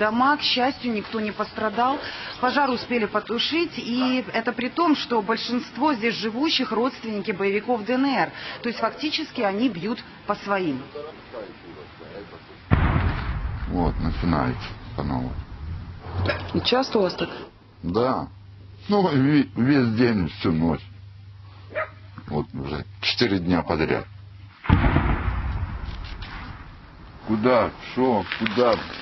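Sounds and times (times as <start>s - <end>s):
artillery boom: 12.7s - 16.7s, 24.6s - 27.0s.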